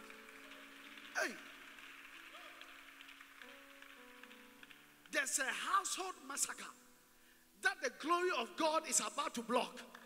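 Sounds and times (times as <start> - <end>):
soft music with held chords: 0.0 - 7.6
faint steady hiss: 0.0 - 10.0.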